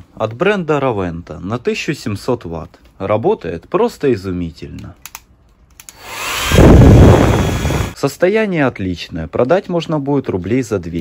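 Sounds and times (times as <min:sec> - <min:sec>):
hair dryer blowing air: 0:05.9 - 0:08.0.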